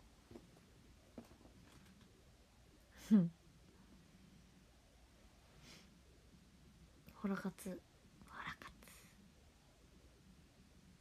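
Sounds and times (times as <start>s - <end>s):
woman whispering: 7.1s - 9.2s.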